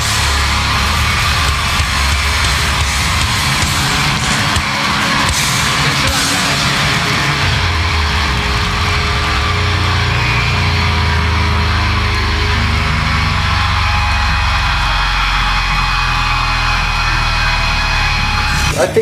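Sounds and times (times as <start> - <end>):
bass ringing: 0.0 - 19.0
cymbals: 0.0 - 19.0
distorted electric guitars: 0.0 - 19.0.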